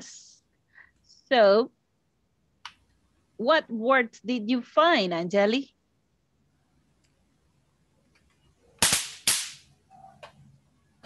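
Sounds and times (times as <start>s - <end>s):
loud sharp bangs: 8.8s - 9.6s.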